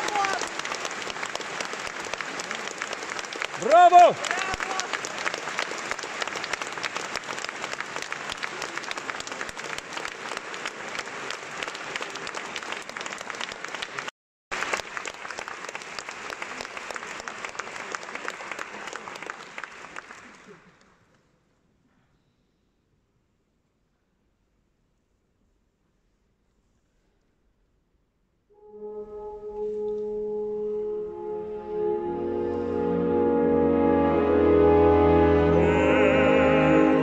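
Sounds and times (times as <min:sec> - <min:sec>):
loud shout from crowd: 0:00.0 - 0:00.6
audience applauding: 0:00.0 - 0:21.0.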